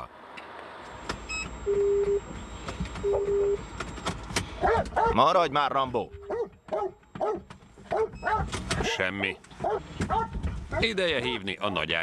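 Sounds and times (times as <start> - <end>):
dog whining and yelping: 4.6 - 5.2, 6.3 - 8.5.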